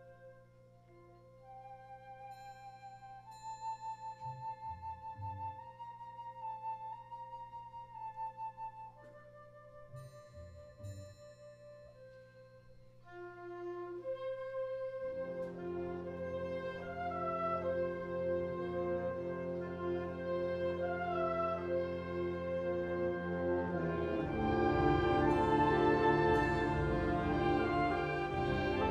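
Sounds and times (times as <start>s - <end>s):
flute melody: 0.0s - 28.9s.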